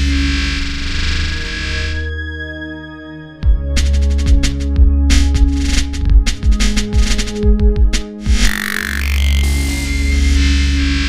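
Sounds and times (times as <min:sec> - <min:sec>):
distorted synthesizer texture: 0:08.3 - 0:11.0.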